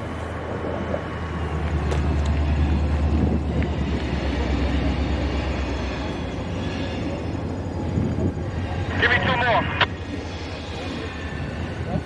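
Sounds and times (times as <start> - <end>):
distant diesel train engine drone: 0.0 - 12.0.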